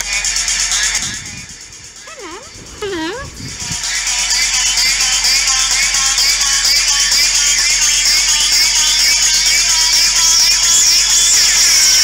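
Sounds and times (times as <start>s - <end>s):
swooping vocal glides: 2.1s - 3.4s.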